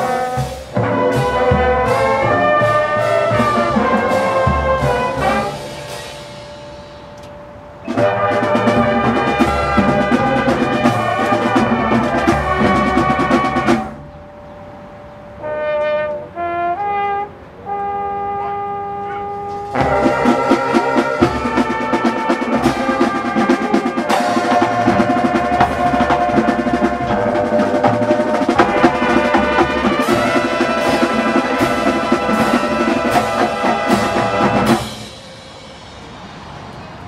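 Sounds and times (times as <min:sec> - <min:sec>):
drum corps playing: 0:00.0 - 0:07.2, 0:07.8 - 0:14.1, 0:19.6 - 0:36.1
horns playing held notes: 0:00.0 - 0:36.2.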